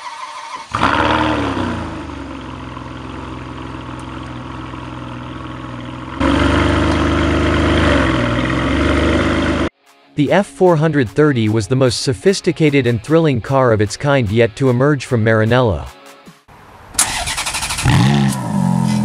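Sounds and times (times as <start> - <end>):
car engine starting and idling: 0.0 - 9.7, 16.5 - 19.0.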